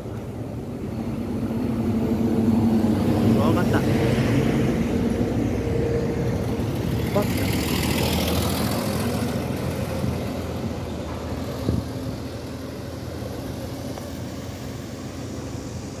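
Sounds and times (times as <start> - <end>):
coach engine driving off: 0.0 - 16.0
road noise: 0.0 - 16.0.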